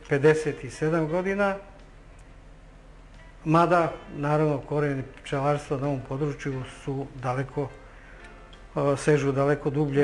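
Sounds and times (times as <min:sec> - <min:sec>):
man speaking: 0:00.0 - 0:01.8, 0:03.4 - 0:07.8, 0:08.7 - 0:10.0.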